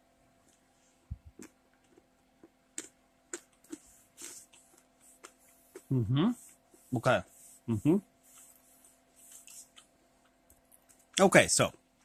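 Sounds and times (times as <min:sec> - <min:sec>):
crunchy pretzel chewing: 0:01.2 - 0:06.0.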